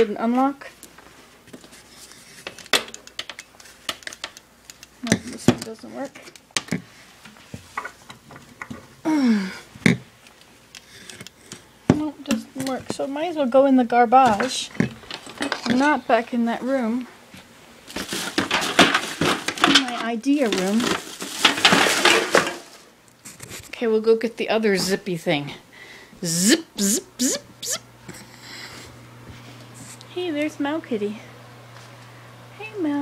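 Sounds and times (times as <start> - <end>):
rustling: 17.4 - 23.8.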